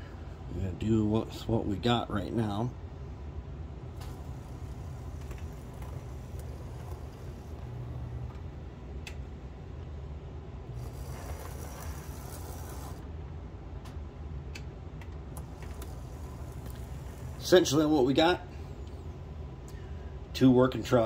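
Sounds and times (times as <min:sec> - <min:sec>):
model locomotive motor hum: 0:04.0 - 0:08.6, 0:10.7 - 0:13.0, 0:15.4 - 0:18.1.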